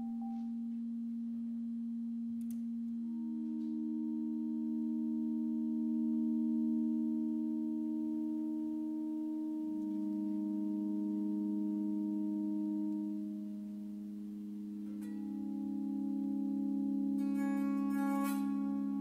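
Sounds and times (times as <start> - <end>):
piano string drone tones: 0.0 - 19.0.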